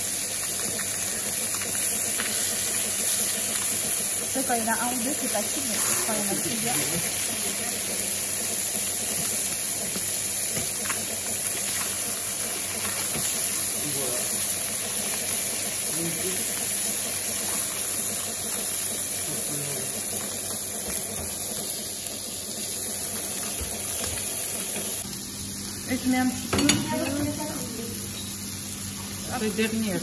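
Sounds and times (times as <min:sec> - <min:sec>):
fish frying in a pan: 0:00.0 - 0:30.0.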